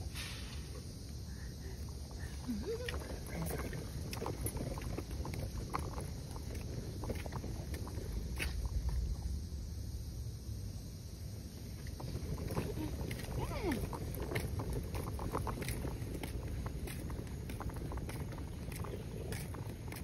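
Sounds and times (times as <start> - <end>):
low wind rumble on microphone: 0.8 - 20.0.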